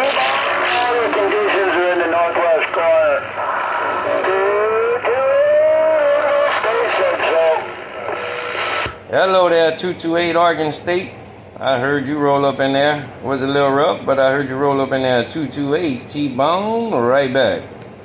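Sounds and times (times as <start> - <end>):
voice over cb radio speaker: 0.0 - 8.9
radio hiss: 0.0 - 9.1.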